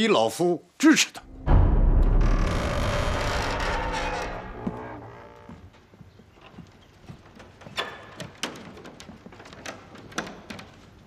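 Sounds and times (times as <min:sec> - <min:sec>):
deep boom with ringing tail: 0:01.3 - 0:04.5.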